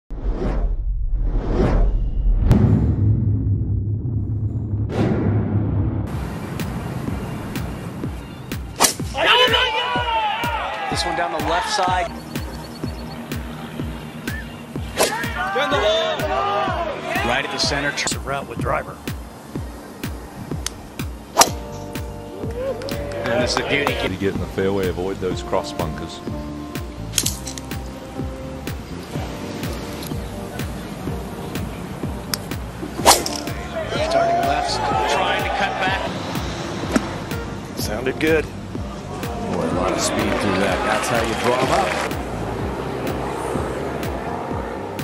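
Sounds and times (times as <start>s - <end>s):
steady low drone: 0.6s - 8.6s
background music with steady beat: 6.1s - 45.0s
golf ball struck crack: 8.6s - 9.2s, 20.6s - 22.1s, 32.3s - 33.6s.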